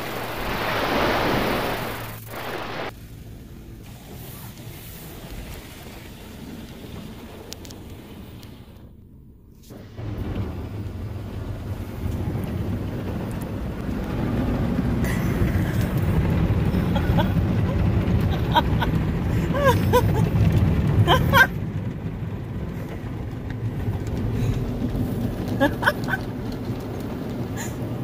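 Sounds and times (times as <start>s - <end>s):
water spraying over car glass: 0.0s - 8.9s, 9.6s - 28.0s
car wash machinery rumbling: 0.0s - 28.0s.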